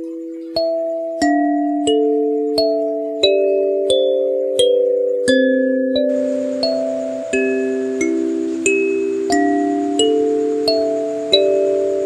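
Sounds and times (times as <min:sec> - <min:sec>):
kalimba playing slow tune: 0:00.0 - 0:12.0.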